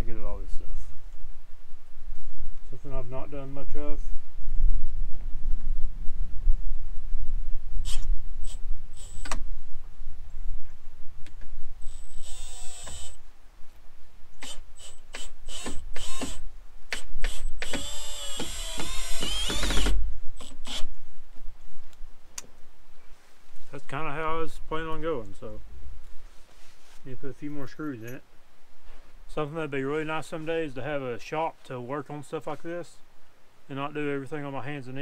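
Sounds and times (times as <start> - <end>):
cordless drill motor: 7.8 - 9.4, 11.9 - 13.2, 14.4 - 20.9
drill clicks: 11.9 - 13.2, 14.4 - 20.9.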